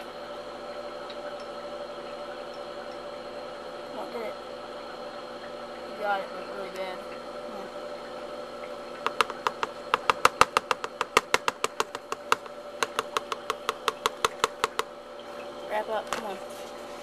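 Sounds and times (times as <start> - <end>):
steady hum: 0.0 - 17.0
rapid sharp clicks: 9.0 - 14.9.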